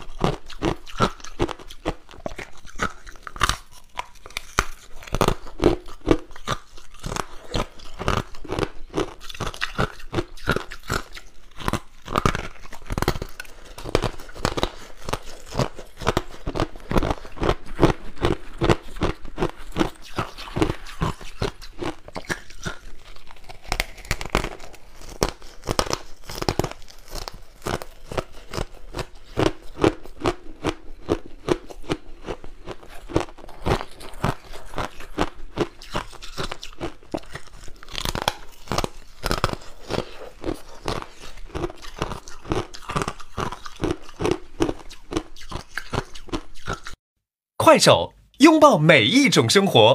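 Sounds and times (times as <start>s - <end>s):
ice being chewed: 0.0s - 47.0s.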